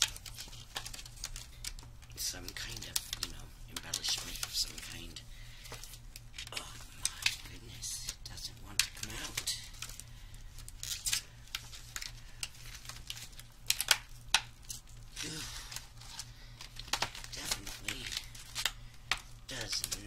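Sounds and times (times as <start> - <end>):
low steady hum: 0.0 - 20.0
plastic packaging crinkling: 0.0 - 20.0.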